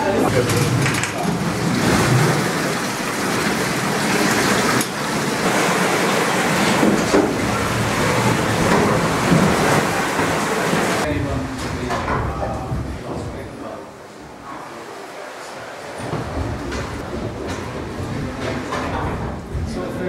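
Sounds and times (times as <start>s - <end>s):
water gushing and splashing: 0.0s - 12.0s.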